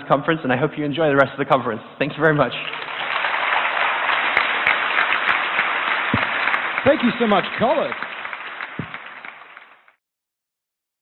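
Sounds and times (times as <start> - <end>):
audience applause: 2.6 - 10.0.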